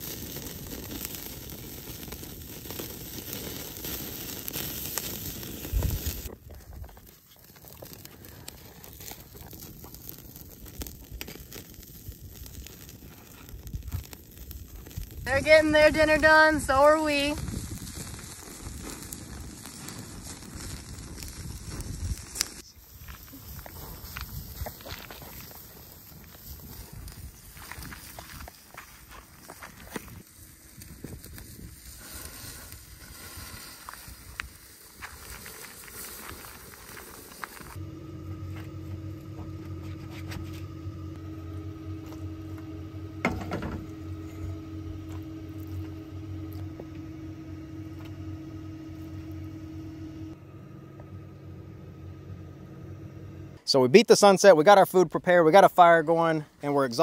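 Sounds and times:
meat sizzling on a grill: 0.0s - 6.3s, 7.2s - 15.3s, 17.4s - 37.8s
sharp clicks and crunches: 0.0s - 15.3s, 17.4s - 37.8s
campfire crackling: 0.0s - 57.0s
steady low hum: 5.1s - 53.7s.

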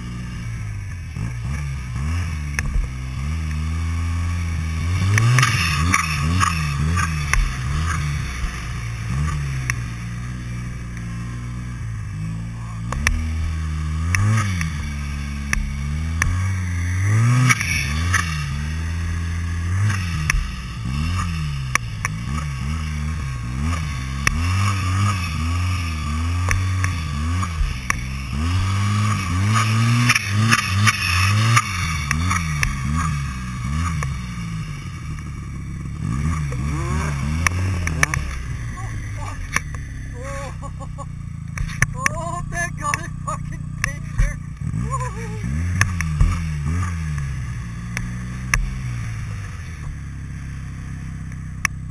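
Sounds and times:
snowmobile engine revving: 0.0s - 51.9s.

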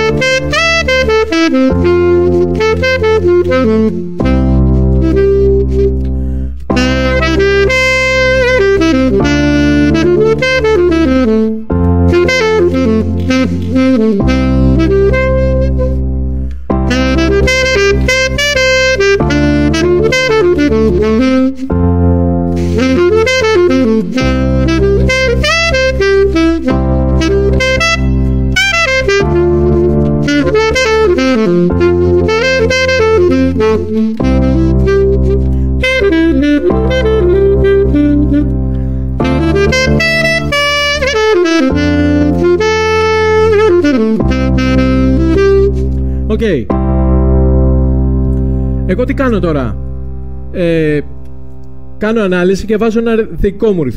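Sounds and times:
jazz saxophone improvising: 0.0s - 48.8s
sustained backing chords: 0.0s - 52.7s.

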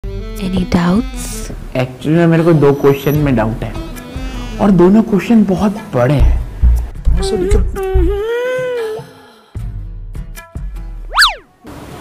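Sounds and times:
bass-heavy music: 6.1s - 8.3s
whistle tone sweeping up and down: 11.1s - 11.5s.

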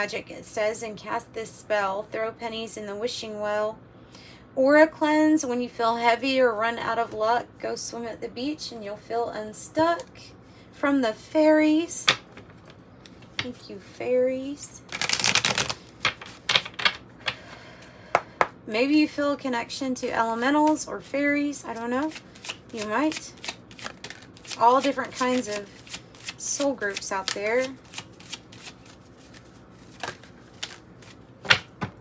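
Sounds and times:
cards shuffling: 14.9s - 17.0s, 21.6s - 32.0s
cards snapping: 14.9s - 17.0s, 22.4s - 31.9s
cards slapping on wooden table: 16.0s - 17.4s, 29.9s - 32.0s.

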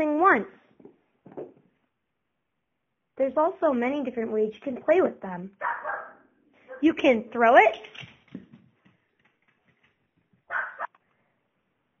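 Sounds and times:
puppy barking: 5.6s - 6.9s, 10.5s - 11.0s.

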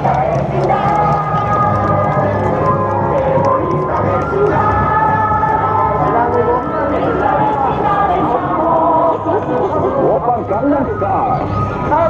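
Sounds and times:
crowd hubbub: 0.0s - 12.0s
voice over loudspeaker: 5.8s - 12.0s.

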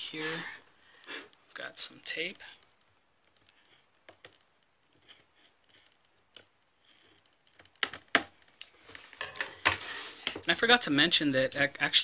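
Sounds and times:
fingers scratching tape on cardboard: 3.6s - 7.7s.

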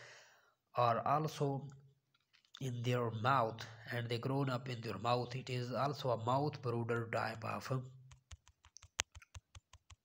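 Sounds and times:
fingertip taps on touchscreen: 8.1s - 10.0s.

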